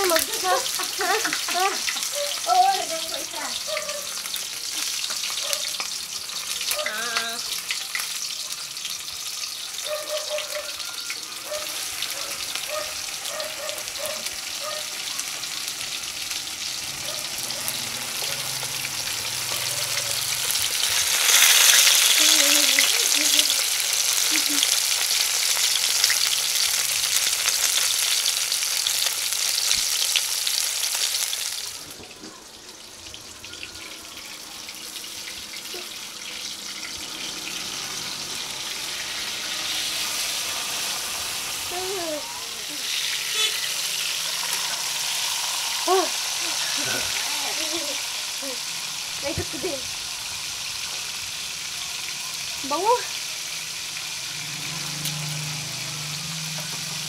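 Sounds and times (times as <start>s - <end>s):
fish sizzling in hot oil: 0.0s - 57.0s
oil spitting crackles: 11.1s - 32.0s.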